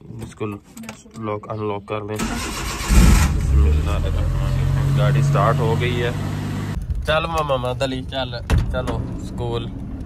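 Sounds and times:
petrol engine starting and idling: 2.2s - 4.6s.

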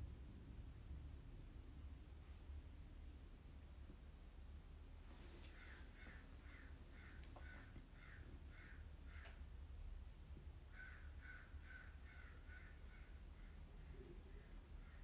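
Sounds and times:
low steady hum: 0.0s - 15.0s
crow cawing: 5.6s - 9.5s, 10.7s - 13.6s.

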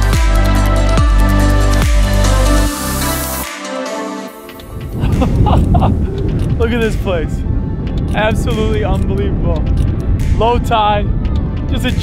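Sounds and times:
wind buffeting microphone: 4.6s - 12.0s.

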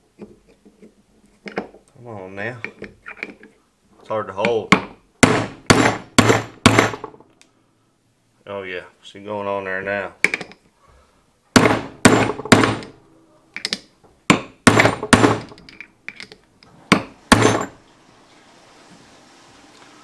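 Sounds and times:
hammer striking steel socket: 13.6s - 16.4s.

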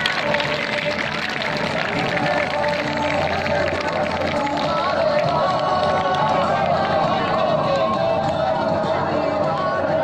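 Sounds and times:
outdoor gathering background noise: 0.0s - 10.0s
song with long held notes: 0.0s - 10.0s.

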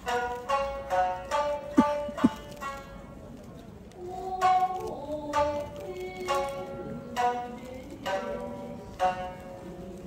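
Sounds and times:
shamisen dance music: 0.0s - 10.0s.

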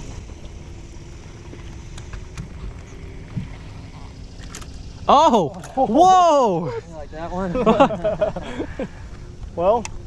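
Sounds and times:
electric trolling motor hum: 0.0s - 10.0s
wind and water rumble: 0.0s - 10.0s.

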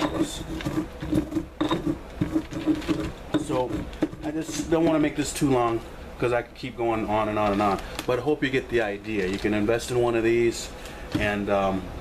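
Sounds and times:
stone pestle grinding corn: 0.0s - 5.5s.

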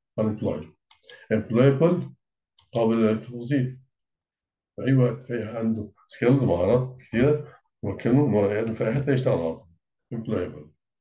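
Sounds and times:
man speaking: 0.2s - 3.8s, 4.8s - 10.7s.

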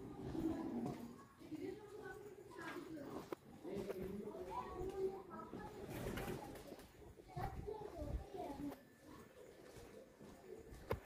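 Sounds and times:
people's voices in background: 0.0s - 11.0s.

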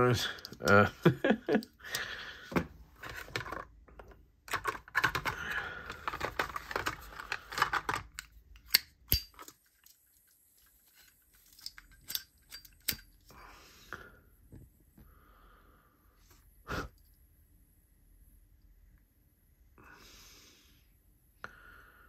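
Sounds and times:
small hard items rustling and clicking: 0.3s - 13.3s.

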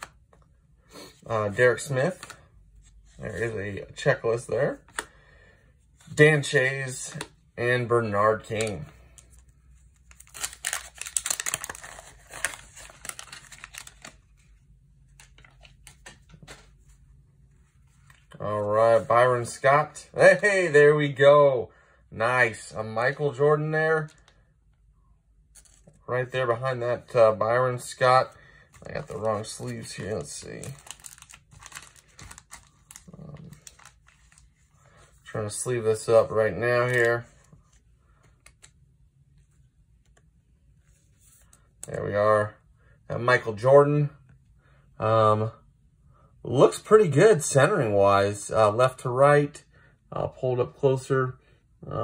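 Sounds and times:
plastic sleeves crinkling: 8.0s - 16.7s, 25.6s - 38.8s
paper wrapper tearing and crinkling: 10.0s - 14.3s, 28.8s - 34.4s.

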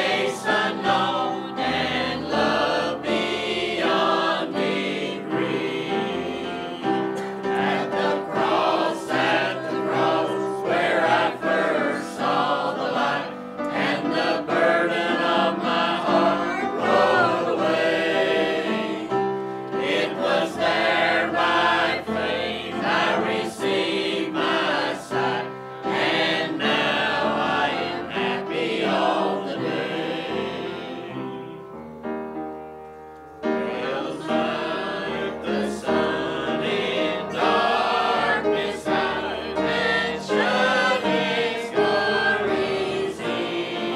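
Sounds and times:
choir singing a hymn: 0.0s - 32.1s, 33.4s - 43.9s.

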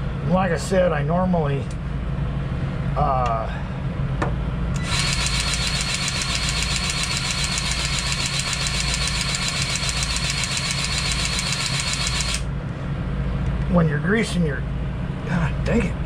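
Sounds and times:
grease gun motor buzzing: 4.8s - 12.5s.

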